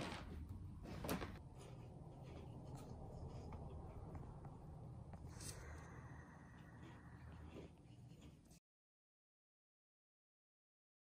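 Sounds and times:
low hum: 0.1 - 8.6.

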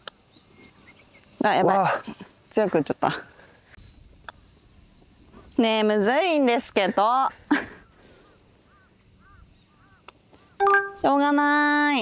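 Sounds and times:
distant bird calling: 7.5 - 11.4.

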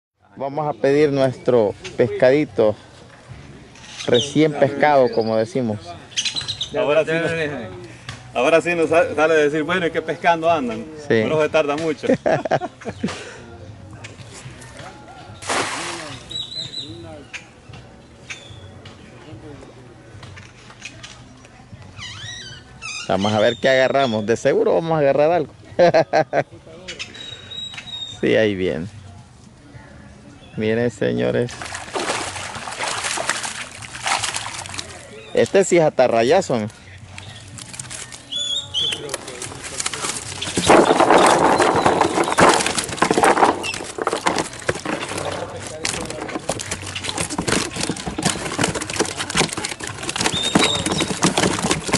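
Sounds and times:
cast net splashing onto water: 15.4 - 16.4, 31.5 - 35.1, 39.0 - 51.9
fish thrashing in metal tub: 15.4 - 16.8, 31.5 - 35.7, 37.3 - 51.9.

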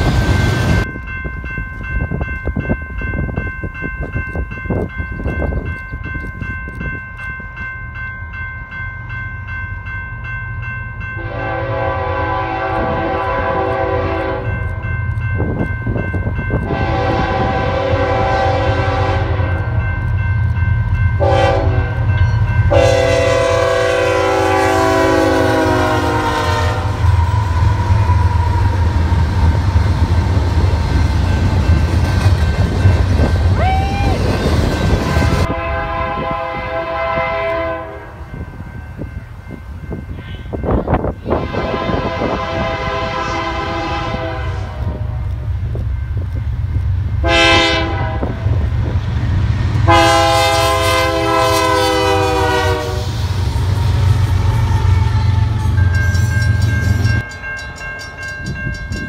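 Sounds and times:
train rumbling past: 0.0 - 59.0
locomotive air horn blasts: 11.2 - 14.6, 16.6 - 19.8, 21.2 - 22.1, 22.7 - 27.3, 35.0 - 38.2, 41.2 - 45.4, 47.2 - 48.5, 49.8 - 53.3.

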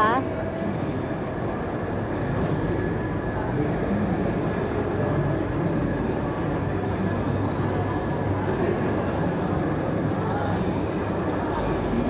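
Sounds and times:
train rumble and hiss: 0.0 - 12.0.

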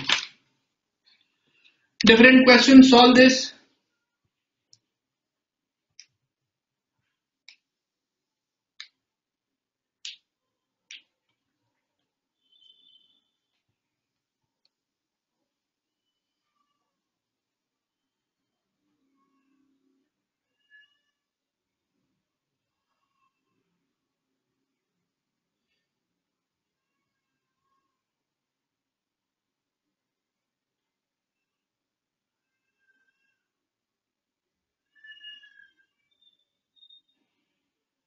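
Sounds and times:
faint animal cry: 19.0 - 21.3, 32.4 - 33.6, 34.8 - 37.0.

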